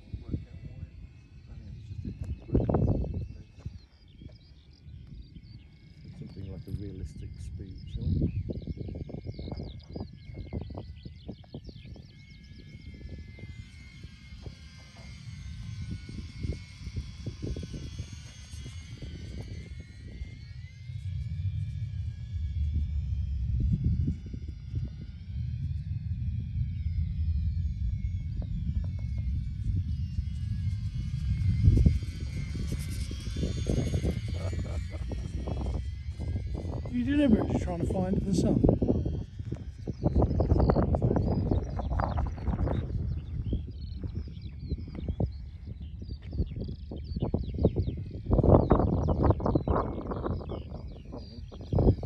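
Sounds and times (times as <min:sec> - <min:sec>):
model plane motor whine: 0:00.0 - 0:52.0
wind rumble on microphone: 0:00.0 - 0:52.0.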